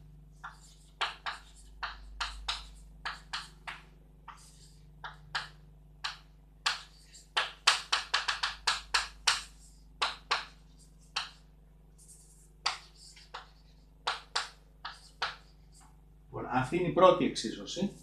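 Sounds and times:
chalk tapping and scraping on blackboard: 0:00.4 - 0:16.0.

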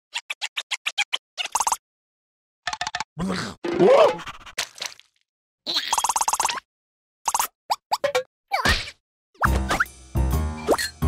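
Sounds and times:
cartoon character vocal noises: 0:03.2 - 0:04.4.

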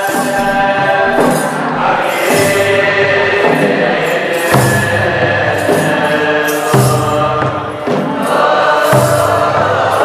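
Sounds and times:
chanted hymn over held tones: 0:00.0 - 0:10.0
drum beat: 0:00.0 - 0:10.0.

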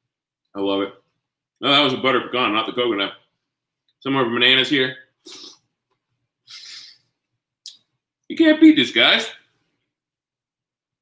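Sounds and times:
mouth click: 0:07.6 - 0:08.0.

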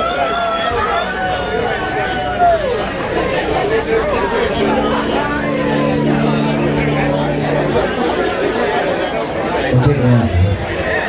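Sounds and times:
bar crowd chatter: 0:00.0 - 0:11.0.

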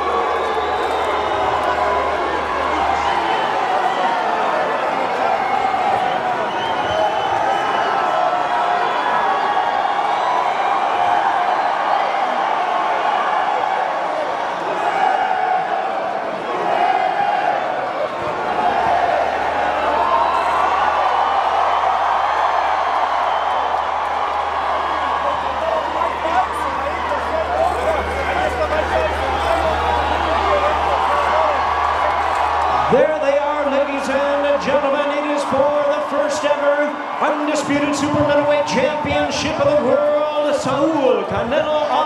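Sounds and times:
crowd cheering and chattering: 0:00.0 - 0:42.0.

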